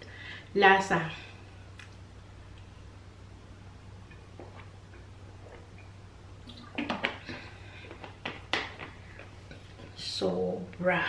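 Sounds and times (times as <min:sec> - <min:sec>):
swallowing: 0:04.4 - 0:05.9.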